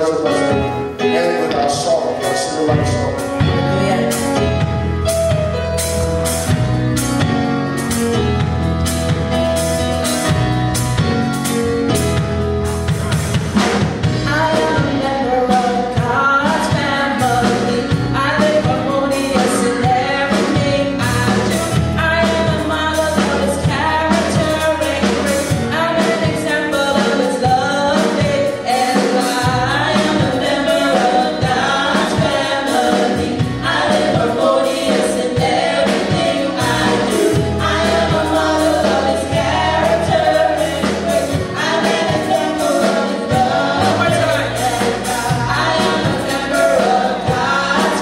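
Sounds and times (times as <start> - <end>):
band with heavy bass: 0.0 - 48.0
women singing gospel: 14.1 - 48.0.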